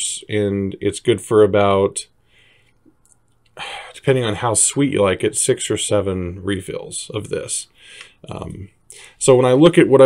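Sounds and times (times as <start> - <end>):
man speaking: 0.0 - 2.2, 3.6 - 10.0
sharp intake of breath: 2.2 - 2.8, 7.7 - 8.2, 8.9 - 9.2
man breathing: 2.2 - 2.9, 7.7 - 8.2, 8.9 - 9.2.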